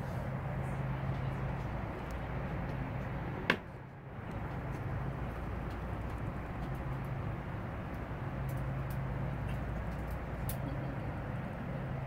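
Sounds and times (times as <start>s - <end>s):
airplane cabin drone: 0.0s - 12.0s.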